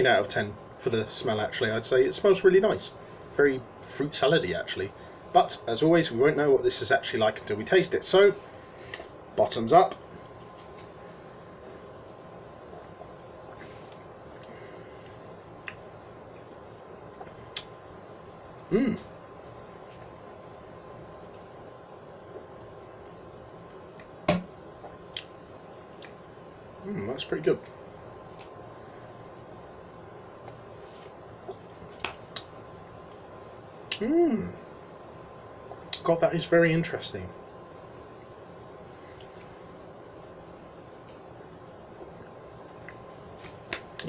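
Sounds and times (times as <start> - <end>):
low room hiss: 0.0 - 44.0
lip smacks: 8.9 - 9.2, 12.7 - 16.5, 17.1 - 17.8, 24.0 - 26.2, 30.4 - 33.2, 33.8 - 34.1, 42.0 - 44.0.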